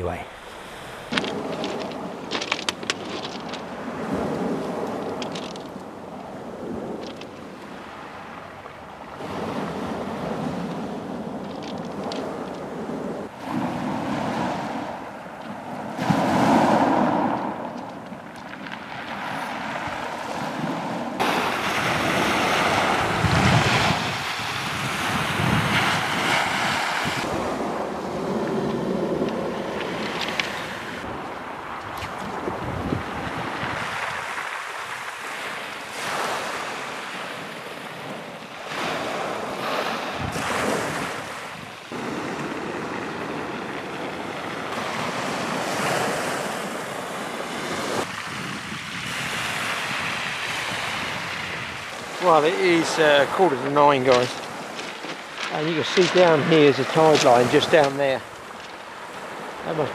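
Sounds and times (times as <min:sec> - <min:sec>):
waves washing over pebbles: 0:00.0 - 0:59.9
wind buffeting microphone: 0:00.0 - 0:59.9.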